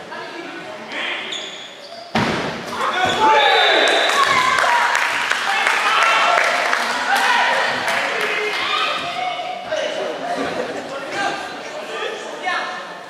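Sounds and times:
players shouting: 0:02.8 - 0:09.6.

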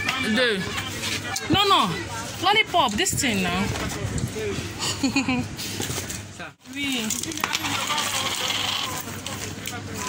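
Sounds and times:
coin dropping on wooden counter: 0:07.1 - 0:08.9.

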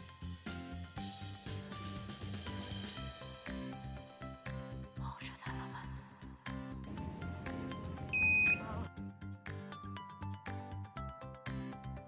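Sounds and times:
background music with beat: 0:00.0 - 0:05.1, 0:06.3 - 0:12.0
high electronic beep: 0:08.1 - 0:08.8.

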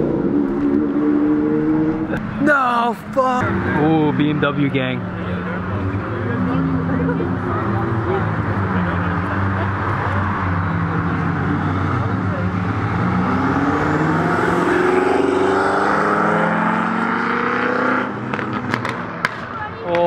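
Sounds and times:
cars accelerating past: 0:00.0 - 0:02.4, 0:03.2 - 0:20.0
car engine revving: 0:00.0 - 0:02.5, 0:03.2 - 0:19.6.

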